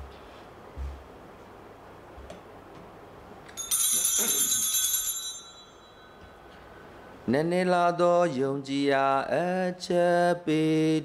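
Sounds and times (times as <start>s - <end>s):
small hand bells jangling: 3.6s - 6.2s.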